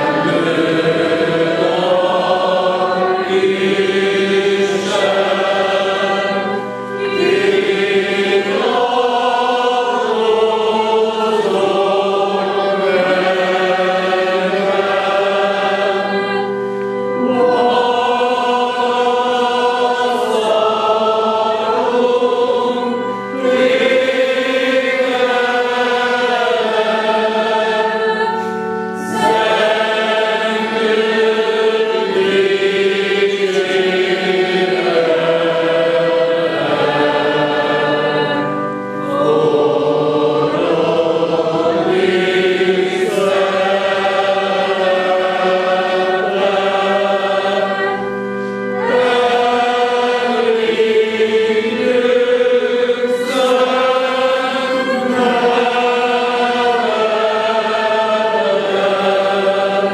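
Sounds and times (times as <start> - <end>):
men's choir singing a hymn: 0.0 - 59.9
singers breathing: 16.6 - 17.1, 28.3 - 28.9, 48.2 - 48.8.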